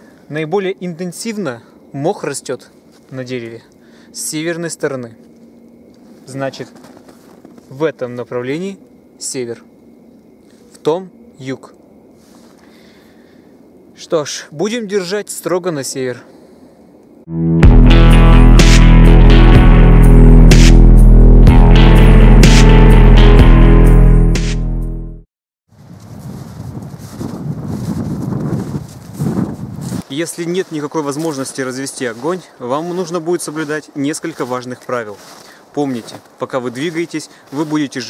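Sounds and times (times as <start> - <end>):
wind gusting across microphone: 25.7 - 30.2.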